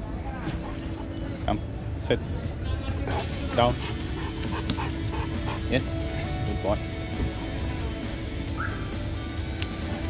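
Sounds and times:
dog whimpering: 3.2 - 6.4.

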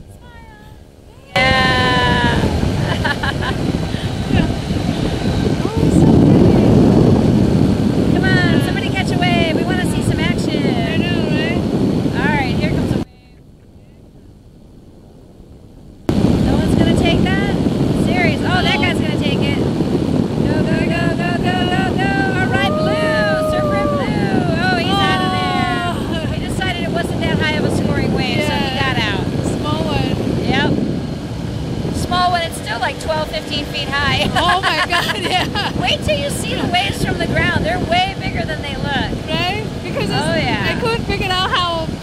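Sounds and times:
microlight engine and propeller: 0.8 - 42.0.

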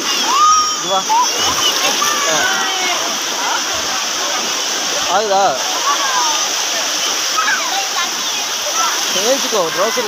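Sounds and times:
sea surf on a beach: 0.0 - 10.0.

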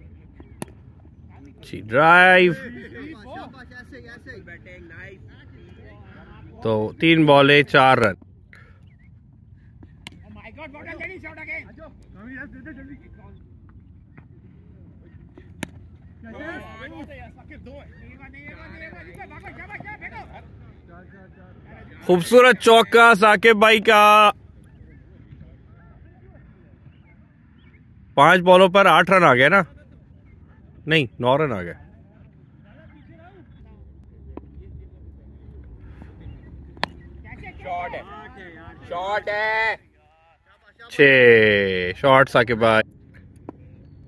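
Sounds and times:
faint distant voices: 0.0 - 7.4, 8.0 - 44.0
low outdoor rumble: 0.0 - 40.0
low wind rumble: 30.2 - 39.8
cricket bat striking ball: 36.8 - 37.1.

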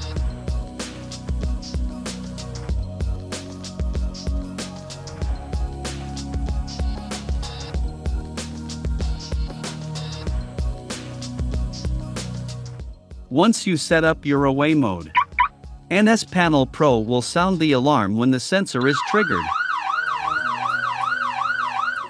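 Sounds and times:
background music with drum beat: 0.0 - 16.7
electronic siren wailing: 15.1 - 15.5, 18.8 - 22.0.

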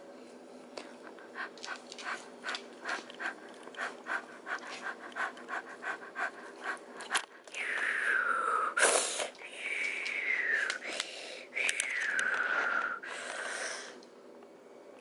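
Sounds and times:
small dog panting: 1.0 - 7.4.

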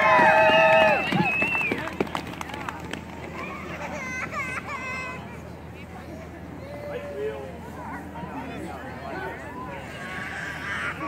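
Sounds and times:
faint crowd noise: 0.0 - 11.0
street noise: 0.0 - 11.0
child crying out: 9.9 - 11.0.

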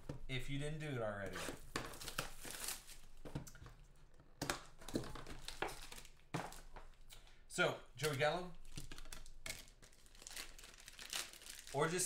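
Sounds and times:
plastic wrapping crinkling: 1.3 - 3.6, 4.5 - 7.1, 8.0 - 12.0.

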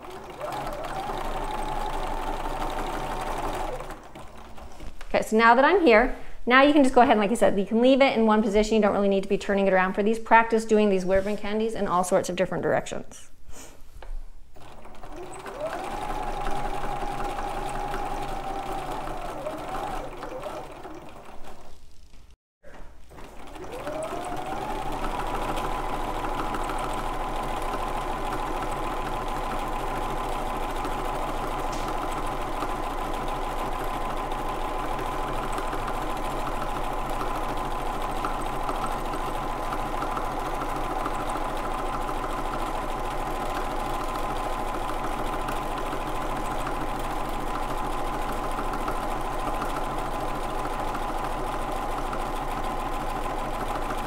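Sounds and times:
sewing machine motor whine: 0.0 - 4.9, 14.6 - 22.2, 23.1 - 54.0.

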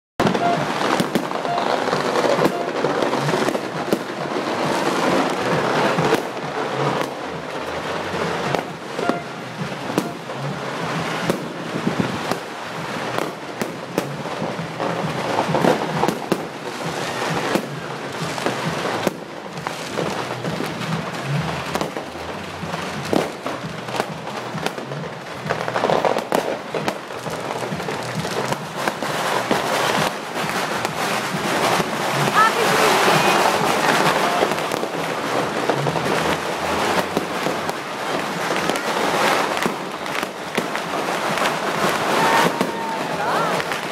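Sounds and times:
fireworks bangs and crackles: 0.2 - 43.9.

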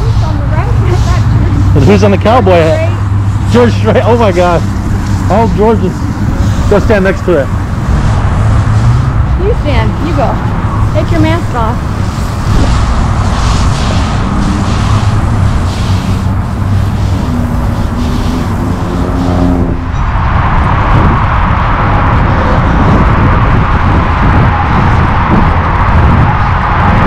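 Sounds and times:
loud outdoor background rumble: 0.0 - 27.0.

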